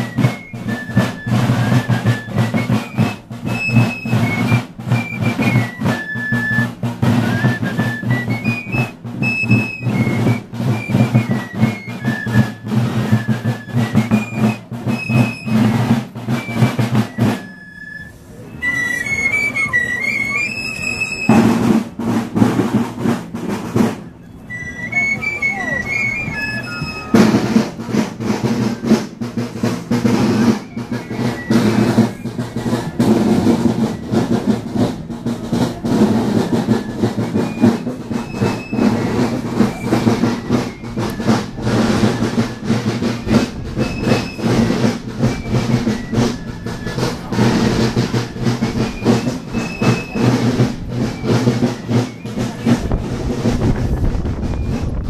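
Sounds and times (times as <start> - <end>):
fife melody: 0.0 - 55.0
marching drums rolling beat: 0.0 - 55.0.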